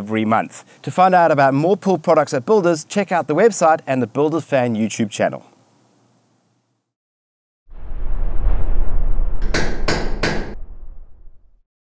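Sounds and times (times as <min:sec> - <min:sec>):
low rumble: 0:07.7 - 0:11.6
sharp knocks: 0:09.4 - 0:10.7.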